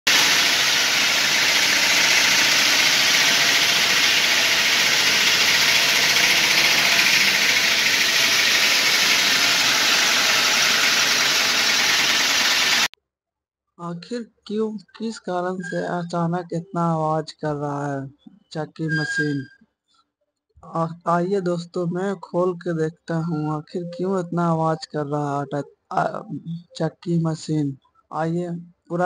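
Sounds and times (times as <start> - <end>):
flour mill running: 0.0 - 12.9.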